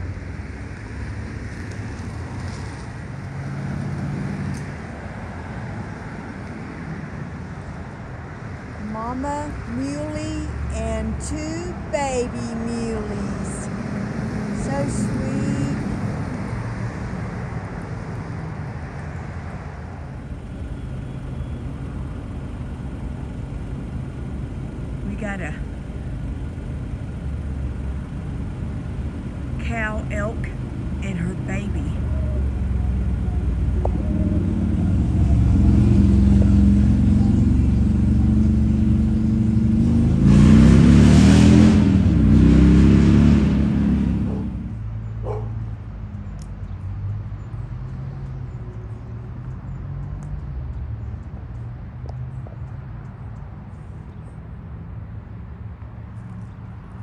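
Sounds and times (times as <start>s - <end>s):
vehicle engine rumbling past: 0.0s - 57.0s.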